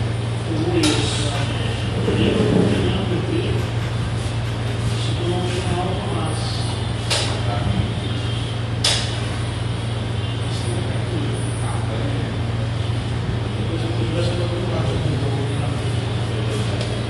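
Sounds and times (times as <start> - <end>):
room noise hum: 0.0 - 17.0.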